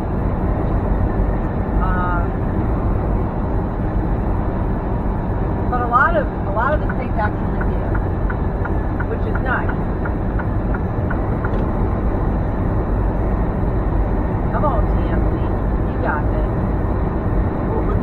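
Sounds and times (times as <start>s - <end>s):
truck engine and tyres drone: 0.0s - 18.0s.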